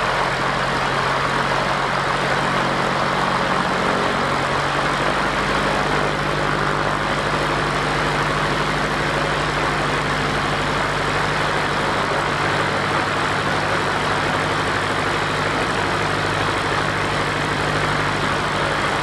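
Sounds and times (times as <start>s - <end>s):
light aircraft engine idling: 0.0s - 19.0s.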